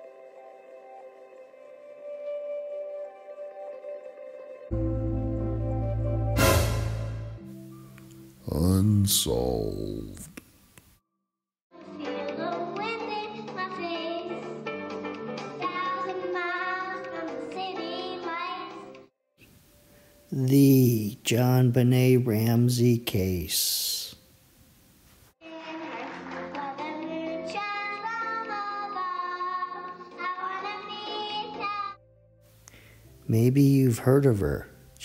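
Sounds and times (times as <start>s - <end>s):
backing music track: 0.0s - 10.3s
girl singing into microphone: 11.8s - 14.6s, 15.4s - 18.9s, 26.5s - 32.0s.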